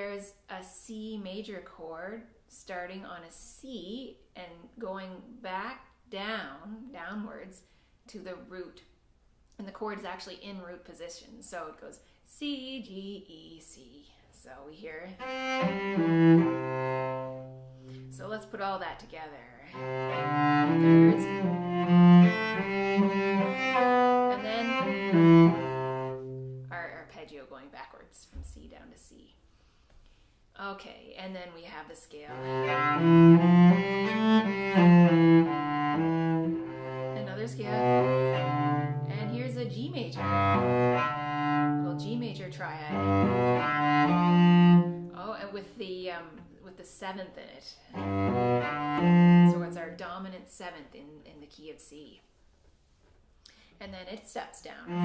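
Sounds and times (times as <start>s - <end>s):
cello bowing descending arpeggio: 15.2s - 18.2s, 19.7s - 26.7s, 32.3s - 45.2s, 48.0s - 49.8s.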